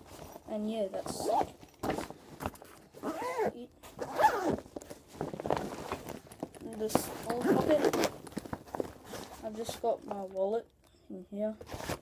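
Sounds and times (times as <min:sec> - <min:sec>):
bag fabric rustling: 0:00.0 - 0:10.2
zipper rasping: 0:02.9 - 0:04.6, 0:07.2 - 0:08.3.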